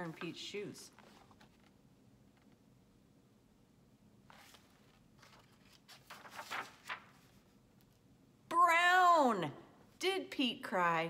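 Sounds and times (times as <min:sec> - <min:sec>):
book pages rustling: 0:00.0 - 0:02.6, 0:04.3 - 0:07.6.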